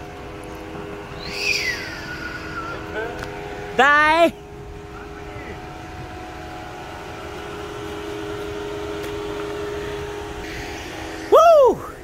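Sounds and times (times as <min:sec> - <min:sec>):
car pulling away humming: 0:00.0 - 0:12.0.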